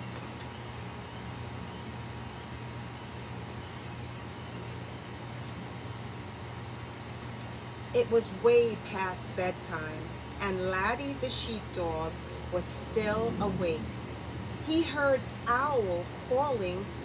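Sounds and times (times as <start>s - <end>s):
high-pitched hiss: 0.0s - 17.0s
steady low hum: 0.0s - 17.0s.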